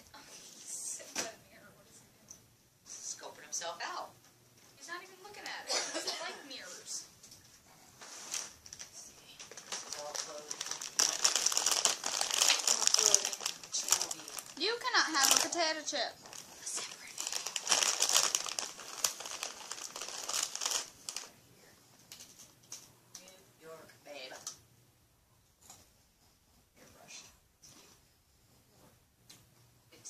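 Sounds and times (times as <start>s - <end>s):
plastic bag crinkling: 8.2s - 21.4s.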